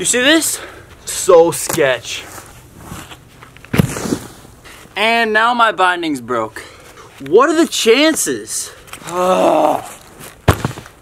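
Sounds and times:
scuff in snow: 2.2s - 4.8s
snowboarder thudding into snow: 3.7s - 4.4s, 10.4s - 10.9s.

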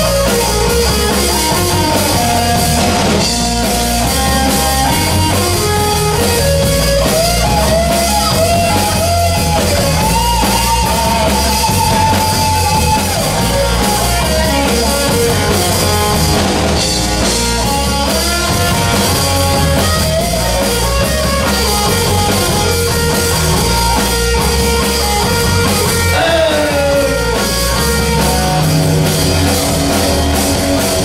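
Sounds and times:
electric guitar melody: 0.0s - 31.0s
live rock band playing: 0.0s - 31.0s.

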